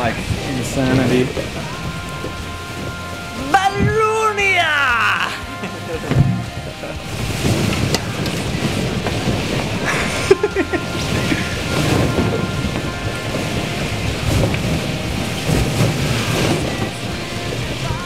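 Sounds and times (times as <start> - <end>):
balloons rubbing and rustling: 0.0 - 18.0.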